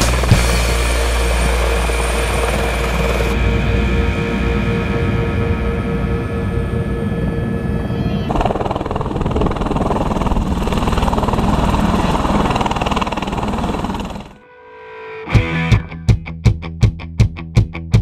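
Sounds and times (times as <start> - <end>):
strummed guitar music with beat: 0.0 - 1.8, 14.8 - 18.0
helicopter engine and rotor: 0.0 - 14.4
wind on microphone: 8.0 - 14.2.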